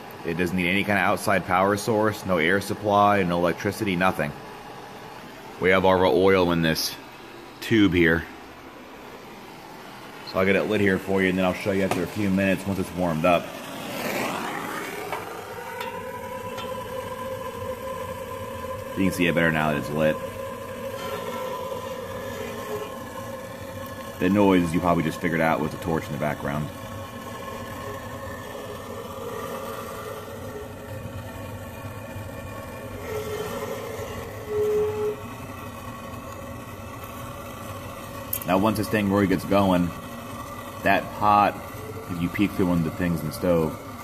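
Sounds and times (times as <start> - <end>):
propane torch hissing: 0.0 - 44.0
loud steady tone: 14.8 - 44.0.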